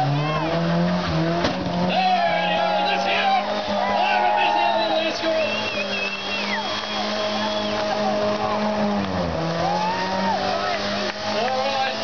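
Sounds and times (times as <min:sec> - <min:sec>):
car engine at high revs: 0:00.0 - 0:12.0.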